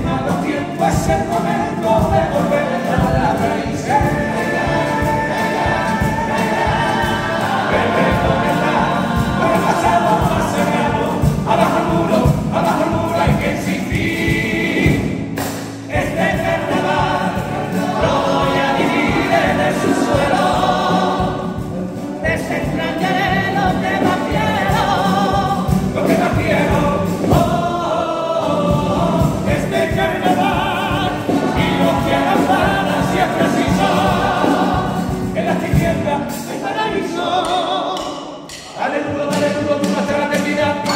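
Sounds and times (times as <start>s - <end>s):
guitar accompaniment: 0.0s - 40.9s
male choir singing in harmony: 0.0s - 40.9s.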